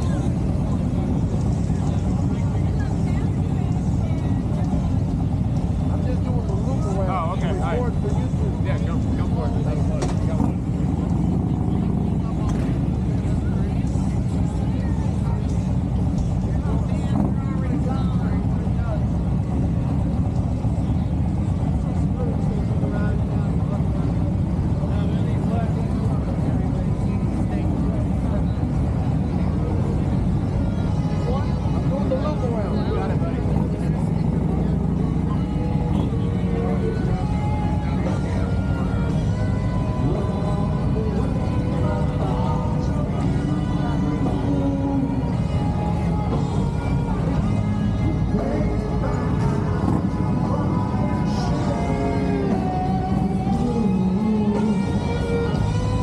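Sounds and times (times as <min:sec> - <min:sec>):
crowd chatter: 0:00.0 - 0:56.0
motorcycle engine running: 0:00.0 - 0:56.0
background music: 0:23.4 - 0:56.0.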